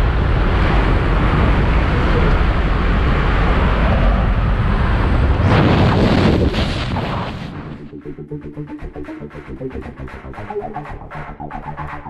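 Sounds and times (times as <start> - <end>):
wind rushing: 0.0 - 7.9
aircraft propeller noise: 0.0 - 12.0.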